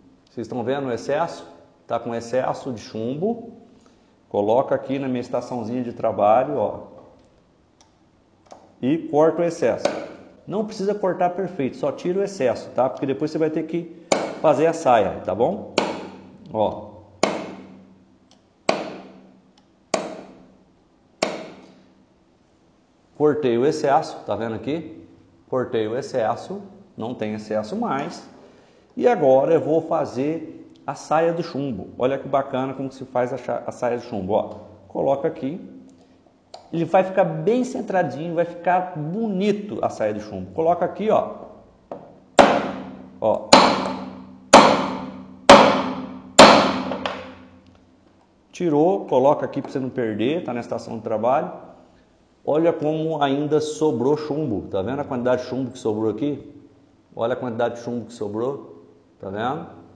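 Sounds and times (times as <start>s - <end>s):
mallet striking metal punch: 9.8s - 10.3s, 14.1s - 14.5s, 15.8s - 16.4s, 17.2s - 17.8s, 18.7s - 19.3s, 20.0s - 20.4s, 21.2s - 21.7s, 42.0s - 47.6s.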